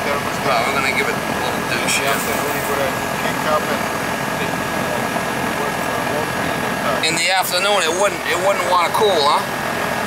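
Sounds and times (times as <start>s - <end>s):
air conditioner condenser running: 0.0s - 10.0s.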